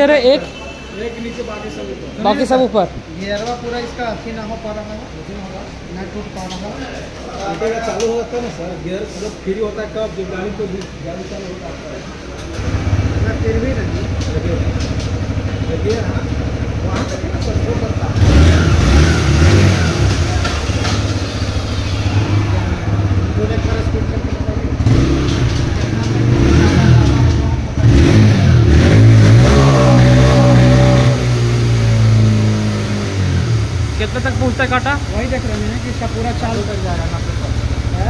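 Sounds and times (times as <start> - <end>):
motorcycle engine idling and revving: 0.0 - 38.0.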